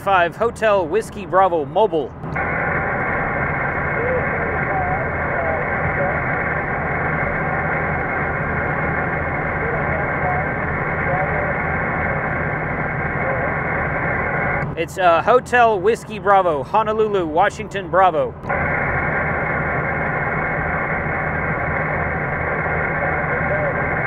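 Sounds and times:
faint warbling radio voices: 0.0 - 24.0
radio speaker hissing: 0.0 - 24.0
truck rumble: 0.0 - 24.0.

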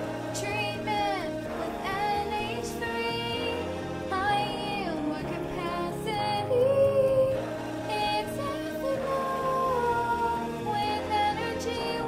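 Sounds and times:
backing music: 0.0 - 12.0
woman singing pop song: 0.1 - 12.0.

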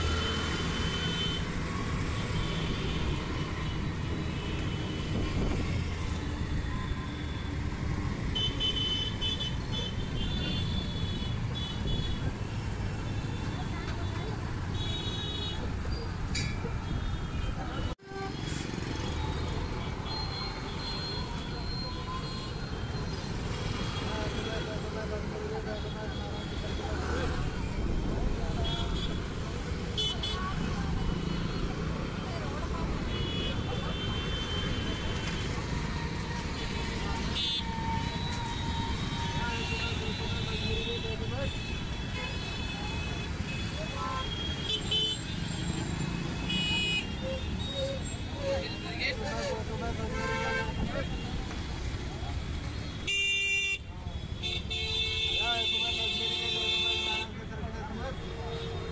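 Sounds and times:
traffic passing: 0.0 - 58.9.

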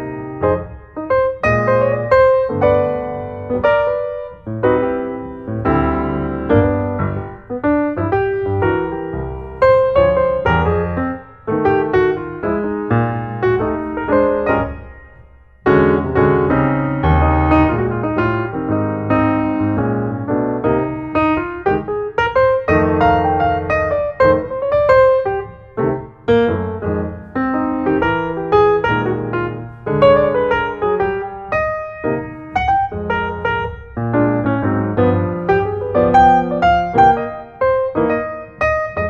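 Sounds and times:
piano music: 0.0 - 39.0.

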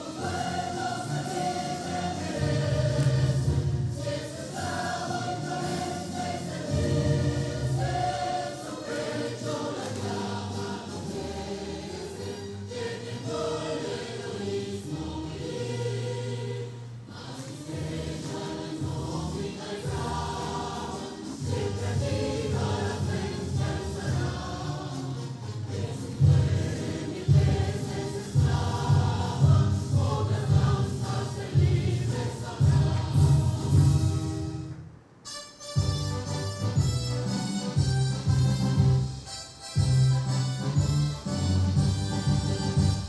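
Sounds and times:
choir singing with instruments: 0.0 - 34.8.

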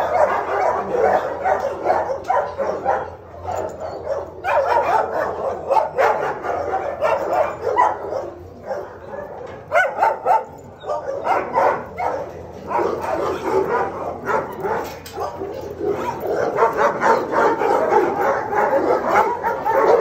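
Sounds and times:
dog barking and yipping: 0.0 - 20.0.

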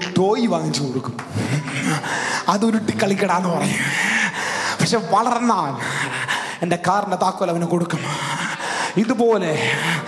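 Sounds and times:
man speaking into microphone: 0.0 - 10.0
breathy gasp: 1.4 - 2.5, 3.9 - 4.8, 8.0 - 9.0.

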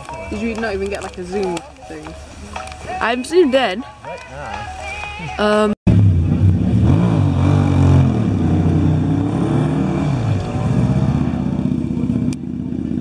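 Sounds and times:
motorcycle engine revving: 5.9 - 13.0.

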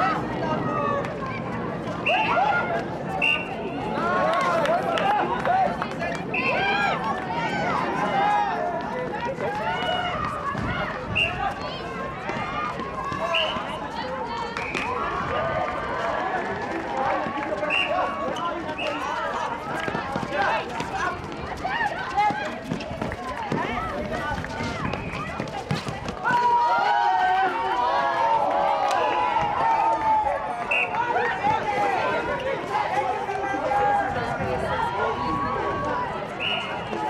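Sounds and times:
people calling and shouting: 0.0 - 37.0
running footsteps: 1.0 - 37.0.

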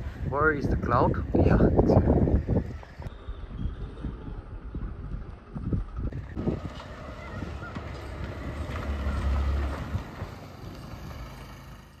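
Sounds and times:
wind buffeting microphone: 0.0 - 11.5
scooter engine passing: 4.1 - 12.0.

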